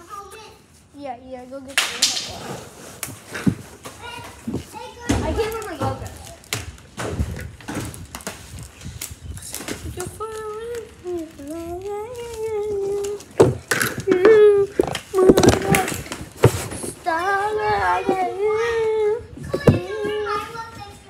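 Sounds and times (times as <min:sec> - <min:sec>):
child calling in sing-song tones: 0:10.0 - 0:13.4, 0:16.9 - 0:21.0.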